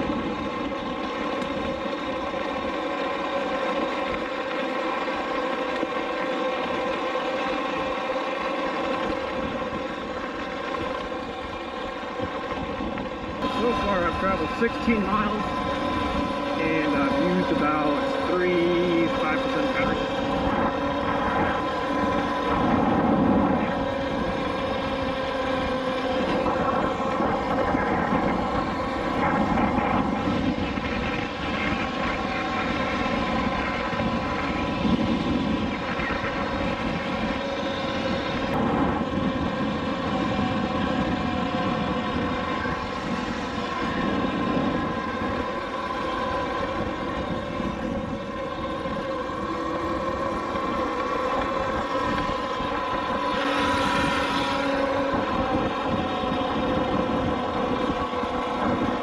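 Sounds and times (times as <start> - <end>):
electric motor whine: 0.0 - 59.0
wind rush on microphone: 0.0 - 59.0.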